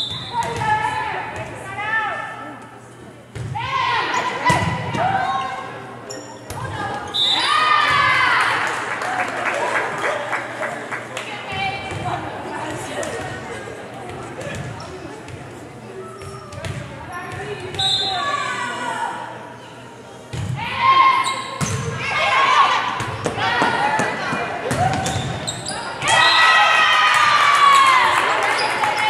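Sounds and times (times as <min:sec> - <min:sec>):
players calling out and shouting: 0:11.2 - 0:29.0.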